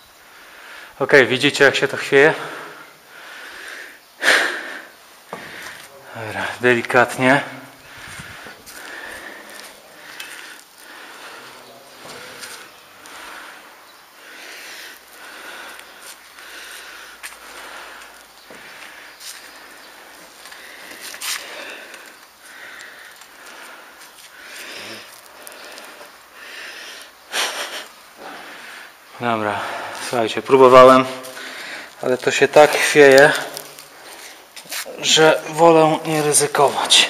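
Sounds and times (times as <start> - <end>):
person breathing hard: 0.1 - 1.0, 2.3 - 6.6, 7.4 - 30.2, 30.9 - 36.2.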